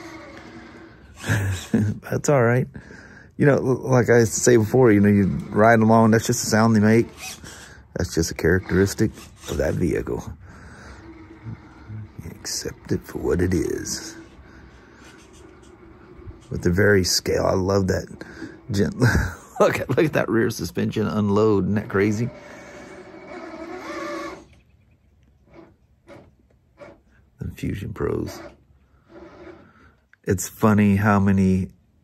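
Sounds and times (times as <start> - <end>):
toy car electric motor whine: 0.0 - 1.9, 4.9 - 17.2, 21.9 - 24.6, 28.2 - 30.0
man laughing: 1.2 - 2.3, 18.7 - 21.2.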